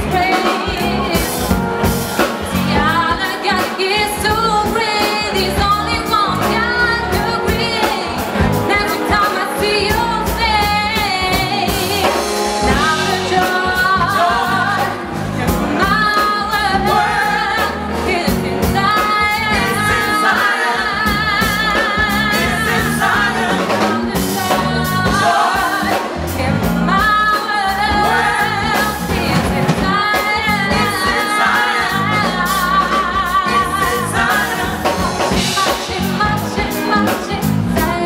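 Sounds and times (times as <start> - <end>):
woman singing with vibrato: 0.0 - 1.7, 2.5 - 38.0
backing vocalists singing: 0.0 - 38.0
drums and cymbals: 0.0 - 38.0.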